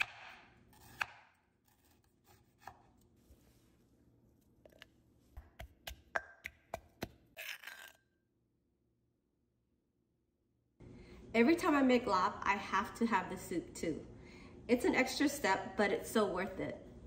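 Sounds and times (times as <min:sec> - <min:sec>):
knife cutting on wooden board: 0:00.0 - 0:03.0.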